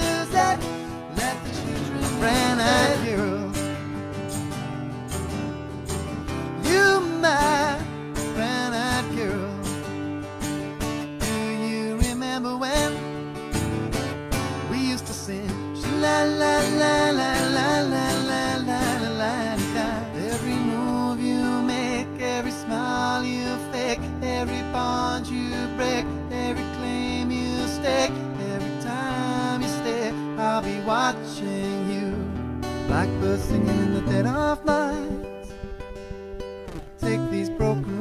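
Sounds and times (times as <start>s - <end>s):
man singing: 0.0s - 4.0s, 6.4s - 10.0s, 11.1s - 13.2s, 14.5s - 35.6s, 36.7s - 38.0s
strummed acoustic guitar: 0.0s - 38.0s.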